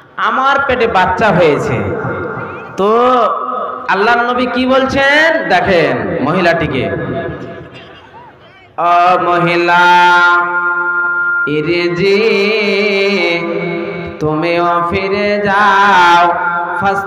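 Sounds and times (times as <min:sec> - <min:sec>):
man chanting through a microphone: 0:00.0 - 0:17.0.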